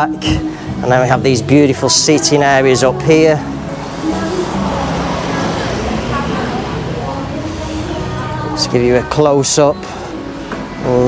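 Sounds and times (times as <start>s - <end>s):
street traffic noise: 0.0s - 11.0s
vehicle engine running nearby: 3.4s - 9.1s.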